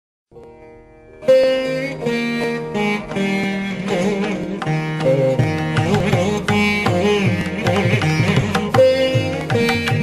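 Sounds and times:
veena plucked notes: 0:00.3 - 0:10.0.

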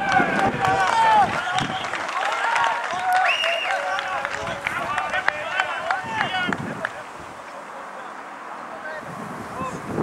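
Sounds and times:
people shouting: 0:00.0 - 0:06.9.

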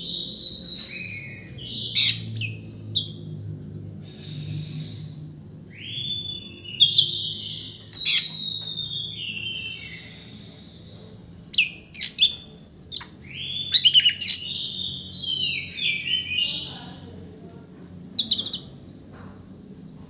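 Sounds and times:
bird singing whistled phrases: 0:04.1 - 0:11.0, 0:11.6 - 0:16.7, 0:18.2 - 0:18.7.

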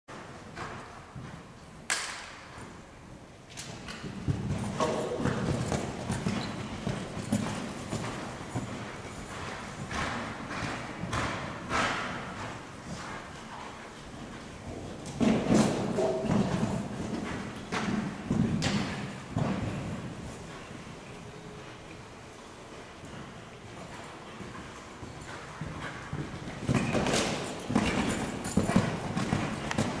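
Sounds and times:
hooves thudding on sand: 0:03.7 - 0:30.0.

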